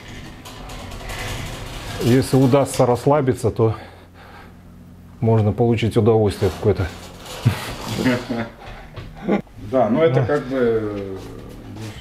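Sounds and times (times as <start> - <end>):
mechanical hum of drive belts: 0.0 - 12.0.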